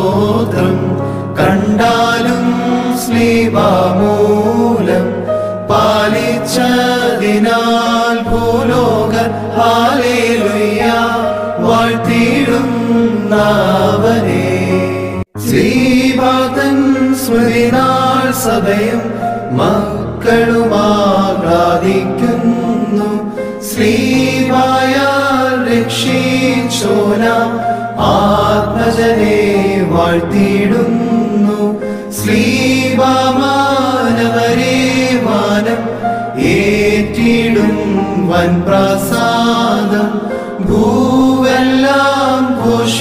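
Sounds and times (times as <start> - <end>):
men chanting a hymn: 0.0 - 43.0.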